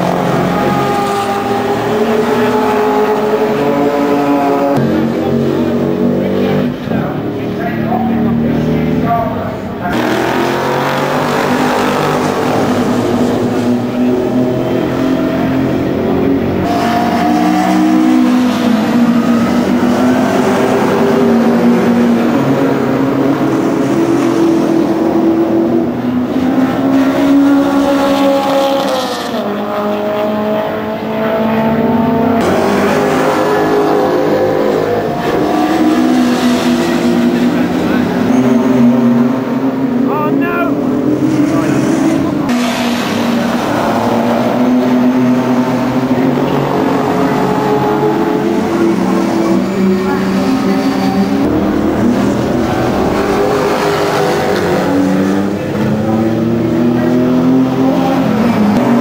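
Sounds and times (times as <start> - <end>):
race car engines passing: 0.0 - 59.0.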